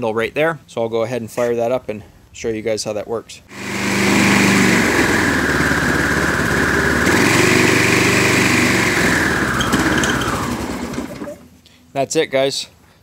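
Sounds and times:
small engine running: 3.5 - 11.4.

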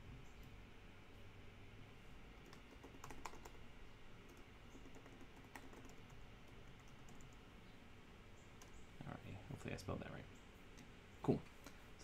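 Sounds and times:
faint keyboard typing: 2.4 - 7.5, 8.6 - 8.8.

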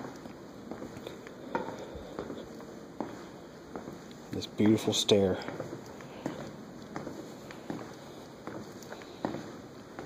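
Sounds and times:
footsteps on tiled stairs: 0.0 - 10.0.

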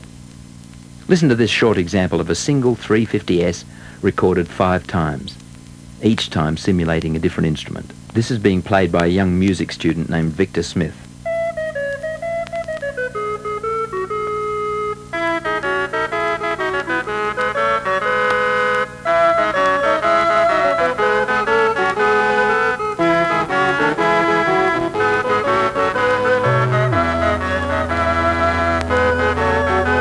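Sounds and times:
layered stylus synthesiser piece: 11.2 - 30.0.

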